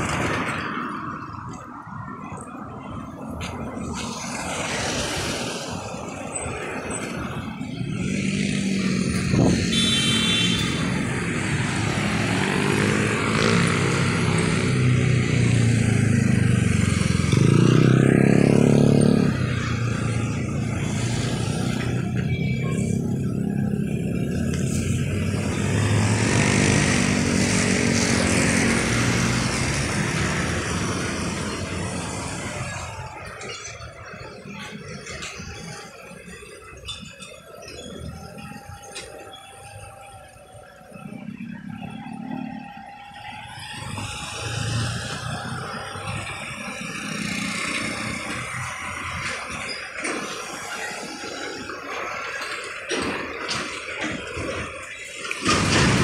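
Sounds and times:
vehicles passing close by: 0.0s - 56.0s.

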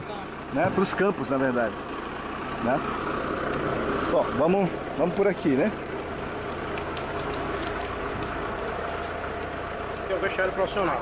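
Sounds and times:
steady rain falling: 1.8s - 11.0s.

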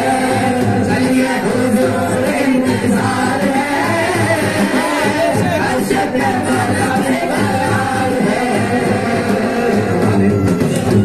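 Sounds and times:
group singing into microphones: 0.0s - 11.0s.

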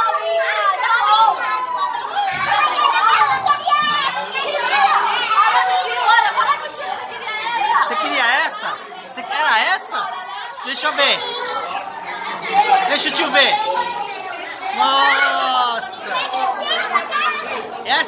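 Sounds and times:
children and adults chattering: 0.0s - 18.0s.

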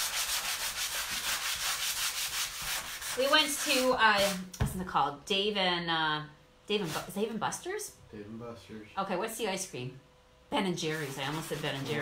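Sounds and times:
sanding block rubbing wood: 0.0s - 4.4s, 10.8s - 12.0s.

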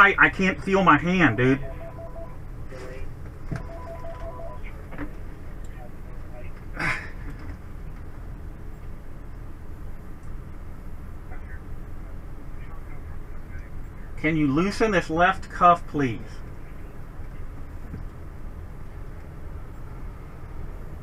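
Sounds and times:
vehicle rumble from inside: 0.0s - 21.0s
electronic beeping: 1.2s - 2.4s, 3.6s - 4.6s.

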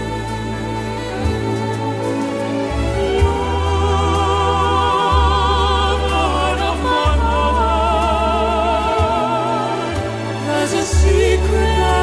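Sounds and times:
person singing with vibrato: 0.0s - 12.0s
steady low bass: 0.0s - 12.0s.

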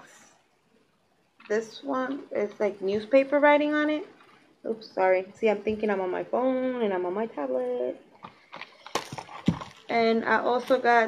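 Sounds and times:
packaged items knocking and rustling: 8.2s - 9.9s.

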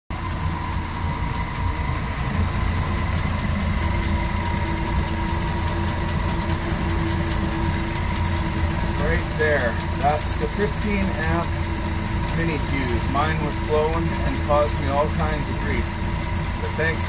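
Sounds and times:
machine rumbling: 0.1s - 17.0s
machine whine: 0.1s - 17.0s.

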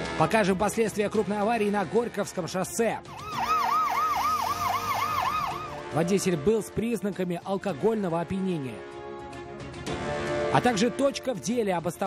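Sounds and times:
ambulance siren yelping: 3.1s - 6.1s.

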